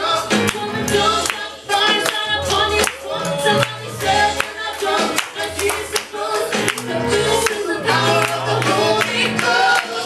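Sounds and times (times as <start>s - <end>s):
bass line: 0.0s - 9.8s
group singing worship song: 0.0s - 10.0s
hands clapping: 0.3s - 10.0s.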